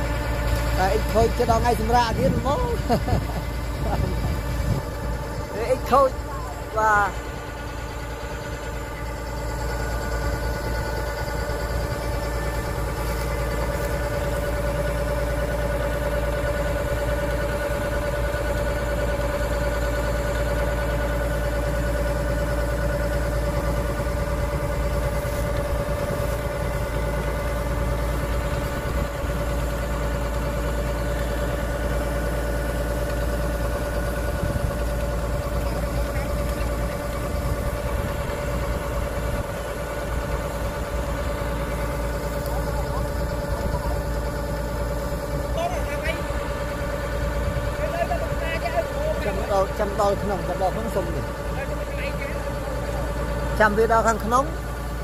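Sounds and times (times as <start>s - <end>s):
auger discharging grain: 0.0s - 55.0s
diesel engine running: 0.0s - 55.0s.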